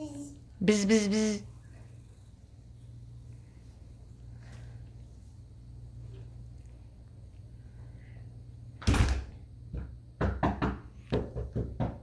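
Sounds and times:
door shutting with a thump: 0:08.8 - 0:12.0
quick knocks on a door: 0:09.8 - 0:12.0.

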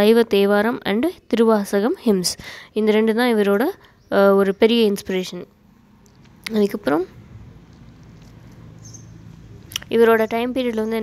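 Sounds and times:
person speaking: 0:09.6 - 0:11.0.

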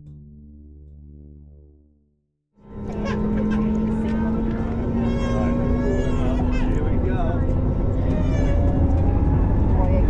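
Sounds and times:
voices: 0:02.8 - 0:10.0.

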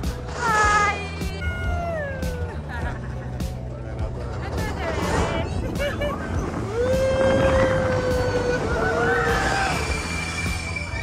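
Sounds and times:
riders screaming and whooping: 0:05.7 - 0:11.0.

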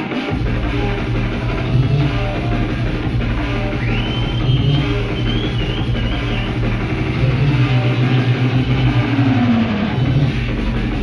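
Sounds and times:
club music with heavy bass: 0:00.0 - 0:11.0.

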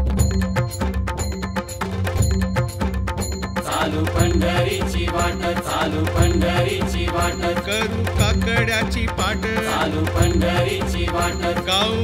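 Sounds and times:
drum beat and bass: 0:00.0 - 0:12.0
devotional singing: 0:03.6 - 0:08.4, 0:09.2 - 0:12.0.

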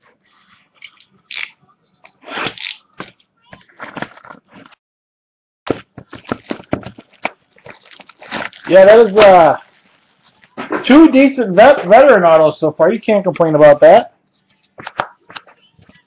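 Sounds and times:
trading cards rustling: 0:05.7 - 0:10.5.

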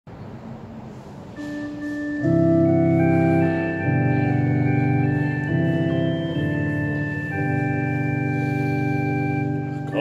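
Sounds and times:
electronic organ held note: 0:01.3 - 0:10.0.

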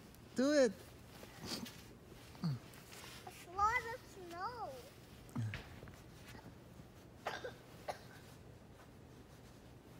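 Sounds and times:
young child's wordless vocal sounds: 0:02.4 - 0:05.6
cough-like sound: 0:07.2 - 0:08.2.

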